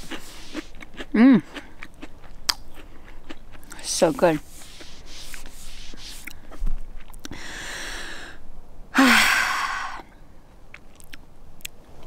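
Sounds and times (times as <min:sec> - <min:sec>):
woman sighing: 0:01.2 - 0:01.5, 0:07.3 - 0:10.1.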